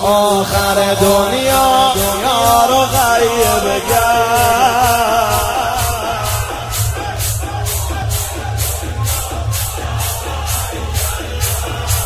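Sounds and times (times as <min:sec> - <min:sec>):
low bass drone: 0:00.0 - 0:12.0
rhythmic drum beat: 0:00.0 - 0:12.0.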